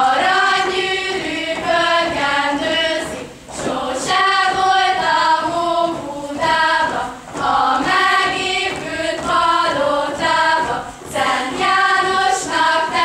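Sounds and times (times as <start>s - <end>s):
girls singing folk song: 0.0s - 13.0s.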